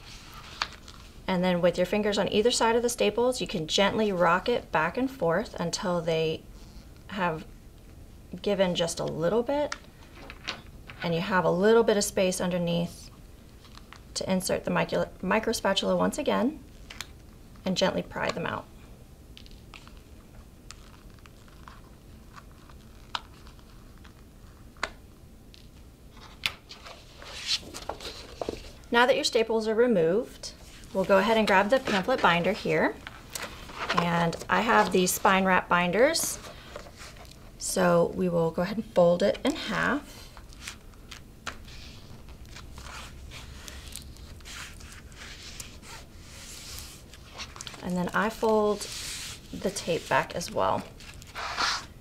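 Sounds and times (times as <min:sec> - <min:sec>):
paper rustling: 0:00.0 - 0:01.2, 0:19.4 - 0:24.7, 0:26.2 - 0:28.8, 0:30.6 - 0:35.4, 0:40.4 - 0:51.9
paper and card scraping rubs: 0:42.7 - 0:50.4, 0:51.0 - 0:51.9.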